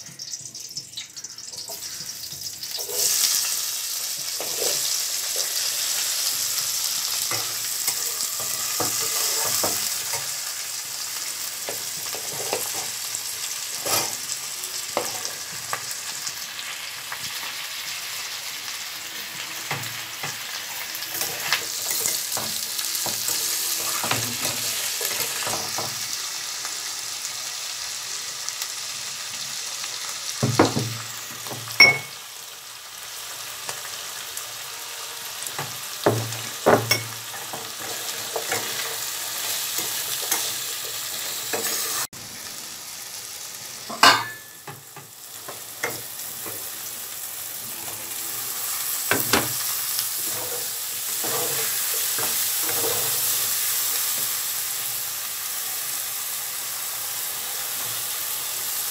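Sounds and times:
onions and potatoes sizzling in oil: 0:00.0 - 0:58.9
metal spatula scraping a pan: 0:01.6 - 0:03.6, 0:04.3 - 0:06.1, 0:06.8 - 0:10.3, 0:13.8 - 0:14.3, 0:19.6 - 0:25.8, 0:36.9 - 0:42.1, 0:47.6 - 0:53.5.

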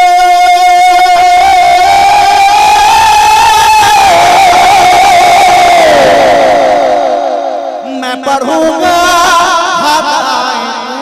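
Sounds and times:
man singing into microphone: 0:00.0 - 0:11.0.

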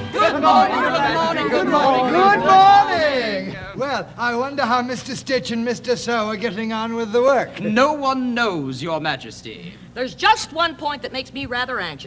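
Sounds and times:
people chattering and laughing: 0:00.0 - 0:03.8.

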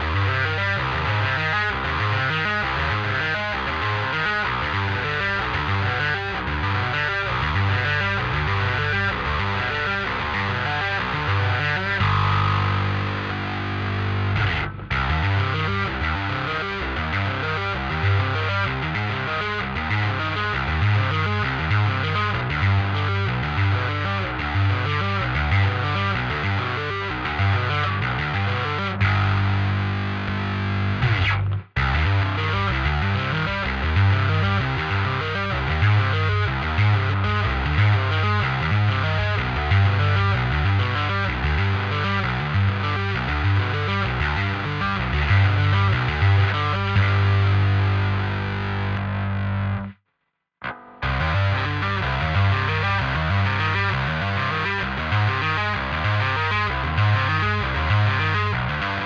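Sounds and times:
distorted metal music: 0:00.0 - 0:49.8, 0:50.6 - 0:59.0
electric bass played fingerstyle: 0:00.0 - 0:50.0, 0:50.6 - 0:59.0.

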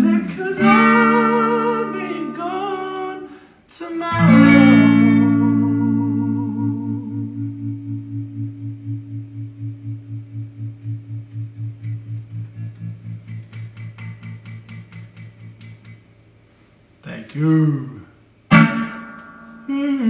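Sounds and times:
loud guitar chord: 0:00.0 - 0:02.4, 0:04.2 - 0:14.9, 0:18.5 - 0:19.8
electric guitar pulsing low note: 0:04.2 - 0:15.9, 0:18.5 - 0:19.8.

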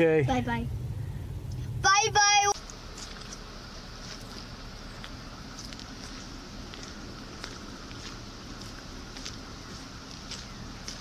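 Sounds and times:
low rumble and hiss: 0:00.0 - 0:11.0.

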